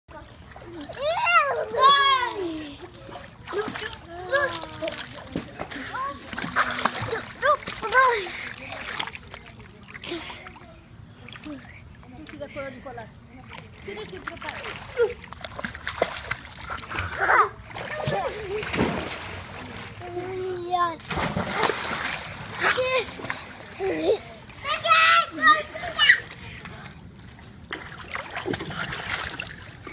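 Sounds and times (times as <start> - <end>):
water splashing in pool: 0.1 - 12.5, 13.4 - 29.9.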